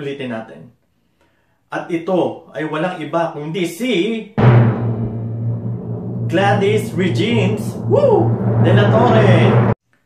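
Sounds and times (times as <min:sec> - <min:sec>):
timpani roll: 0:04.4 - 0:09.8.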